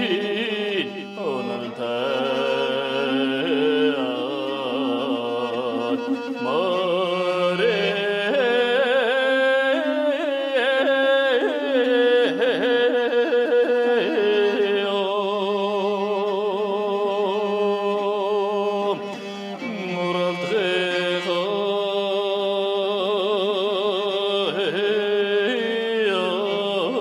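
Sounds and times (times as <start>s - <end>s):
man singing with heavy vibrato: 0.0s - 27.0s.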